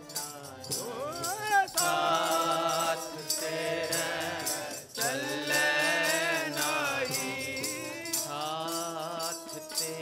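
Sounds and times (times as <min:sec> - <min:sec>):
sustained harmonium: 0:00.0 - 0:10.0.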